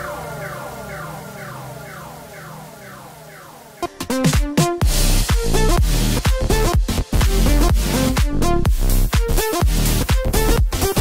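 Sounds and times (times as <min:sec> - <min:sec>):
falling synth sweep: 0:00.0 - 0:05.8
low steady drone: 0:00.0 - 0:06.2
dance track with thump: 0:00.0 - 0:11.0.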